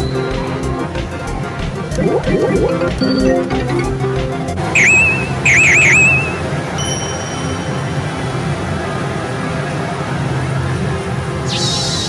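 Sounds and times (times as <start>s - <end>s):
high swooping whistle: 4.8s - 6.5s.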